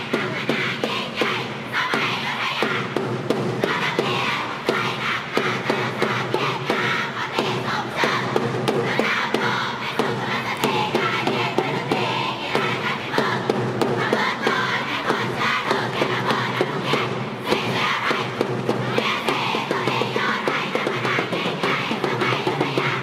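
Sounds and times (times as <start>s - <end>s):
girls chanting and shouting: 0.0s - 23.0s
music: 0.0s - 23.0s.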